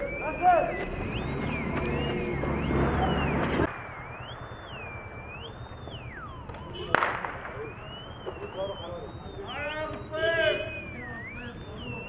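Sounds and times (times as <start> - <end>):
mine detector warbling tone: 0.0 - 6.9, 7.5 - 12.0
sharp click: 6.4 - 6.7.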